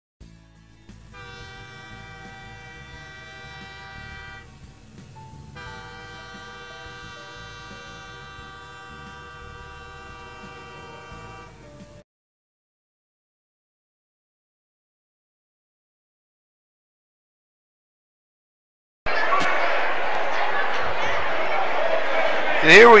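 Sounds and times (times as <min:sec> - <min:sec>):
steam locomotive whistle blasts: 0:01.2 - 0:04.6, 0:05.5 - 0:11.6.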